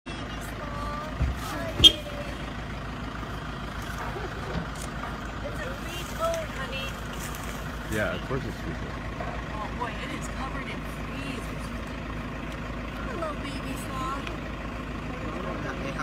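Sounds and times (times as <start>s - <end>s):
vehicle engine idling: 0.1s - 16.0s.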